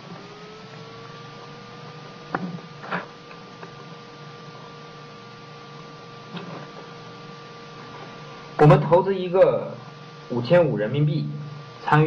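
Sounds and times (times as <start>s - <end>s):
electrical hum and hiss: 0.0s - 12.0s
faint thin whine: 0.0s - 12.0s.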